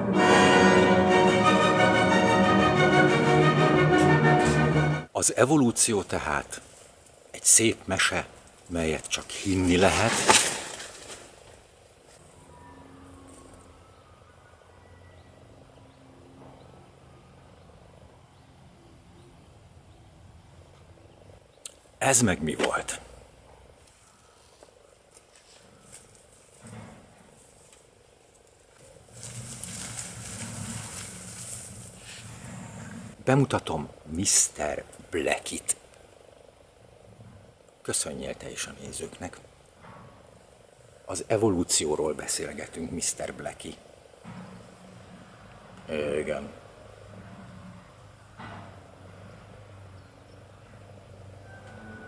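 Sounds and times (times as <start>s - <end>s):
shrub branches rustling: 6.0s - 12.4s, 23.7s - 33.2s
brief rustle: 9.5s - 11.6s.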